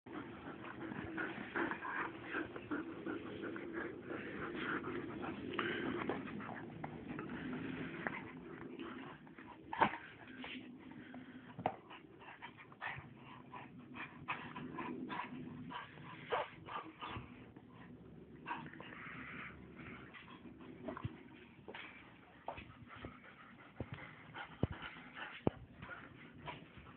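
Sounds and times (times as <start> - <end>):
dogs vocalizing at play: 0.1 - 26.9.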